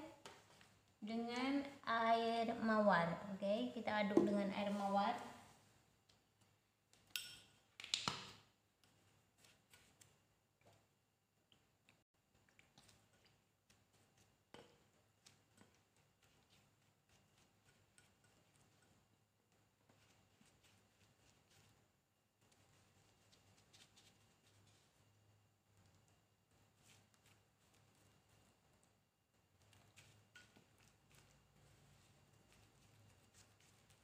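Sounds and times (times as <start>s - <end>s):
spoon clinking on ceramic bowl: 7.1s - 7.6s
spoon stirring in ceramic bowl: 8.8s - 10.9s, 12.4s - 21.8s, 29.6s - 34.0s.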